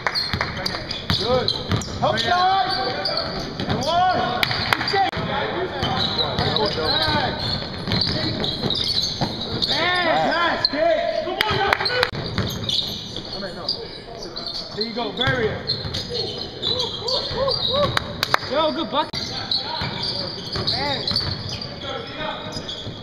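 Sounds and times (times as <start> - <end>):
sneakers squeaking: 0.0 - 23.0
basketball bouncing: 0.2 - 2.0, 3.4 - 9.7, 11.5 - 13.0, 19.8 - 21.5
players' voices: 0.4 - 12.2, 12.8 - 23.0.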